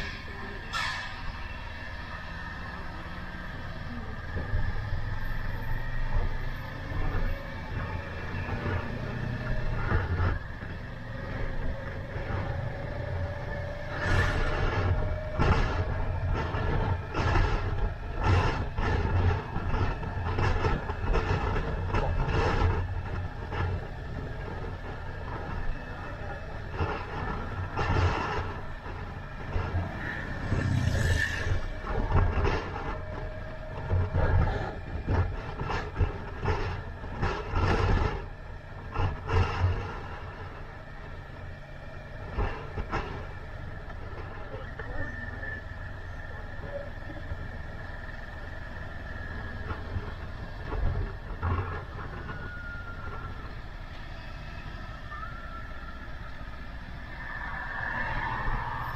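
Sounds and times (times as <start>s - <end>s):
wind buffeting microphone: 6.0s - 58.9s.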